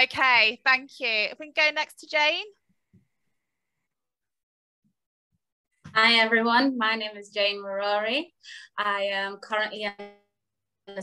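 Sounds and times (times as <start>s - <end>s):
woman speaking: 0.0s - 2.6s, 5.9s - 10.2s.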